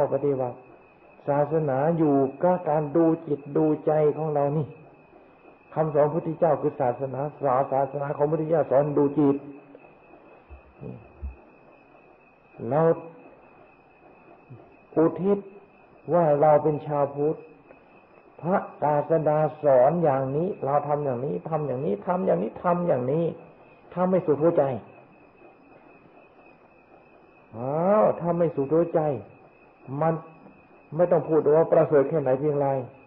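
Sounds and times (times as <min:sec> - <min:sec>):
faint high whine: 0:00.0 - 0:33.0
recording hiss: 0:00.0 - 0:33.0
soft low thumps: 0:10.5 - 0:11.7.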